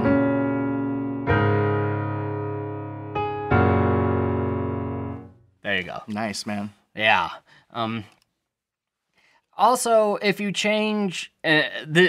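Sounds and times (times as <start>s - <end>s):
piano chords: 0.0s - 5.6s.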